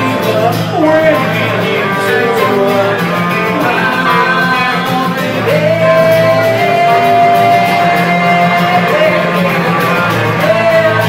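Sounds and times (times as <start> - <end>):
acoustic guitar strumming: 0.0 - 11.0
electric guitar: 0.0 - 11.0
sliding guitar melody: 0.0 - 11.0.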